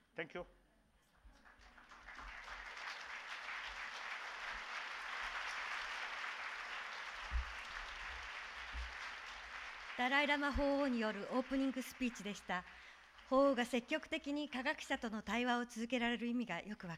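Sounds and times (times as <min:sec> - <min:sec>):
audience applauding: 0:01.4 - 0:13.8.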